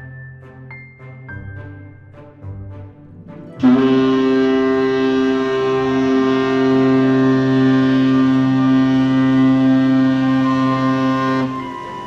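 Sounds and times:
ship horn blast: 3.6 - 12.0.

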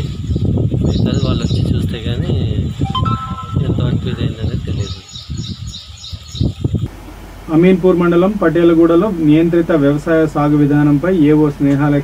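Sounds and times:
birds chirping: 2.9 - 6.8.

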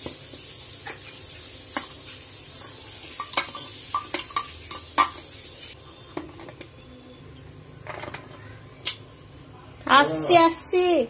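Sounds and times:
steady hiss: 0.0 - 5.8
metal utensils and pots clinking: 0.0 - 6.8, 7.8 - 9.1.

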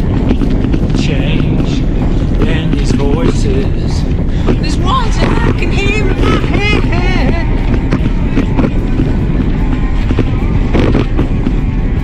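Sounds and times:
bicycle tyres rolling on dirt: 0.0 - 12.0
wind rumble: 0.0 - 12.0.

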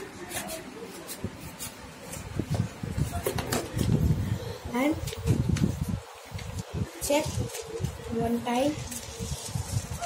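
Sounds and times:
child speaking: 4.6 - 5.1, 7.0 - 9.0
paper rustling on a table: 5.1 - 10.0.

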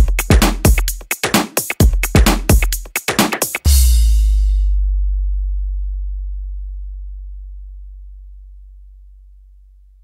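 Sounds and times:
deep electronic sub-bass note: 3.7 - 10.0.

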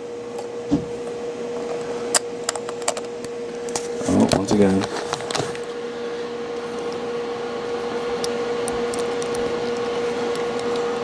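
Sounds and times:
mechanical hum with steady tone: 0.0 - 11.0.

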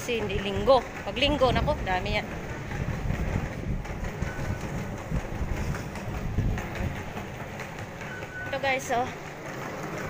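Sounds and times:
low rumble of metro station: 0.0 - 10.0.

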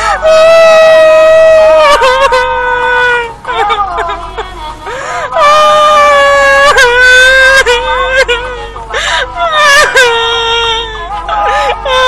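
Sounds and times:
young woman wailing and sobbing: 0.0 - 12.0.

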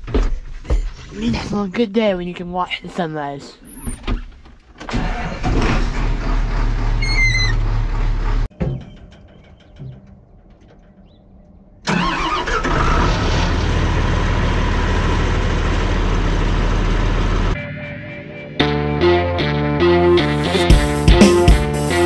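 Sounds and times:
diesel engine starting: 4.6 - 17.6
engine running in tractor cab: 4.8 - 11.2, 11.8 - 17.6.

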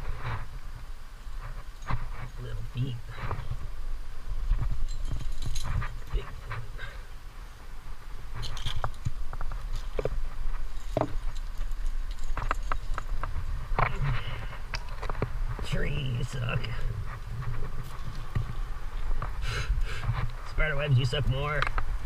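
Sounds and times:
leaves and branches rustling: 0.0 - 22.0
climbing gear scraping on rock: 1.3 - 7.2, 8.0 - 21.5.

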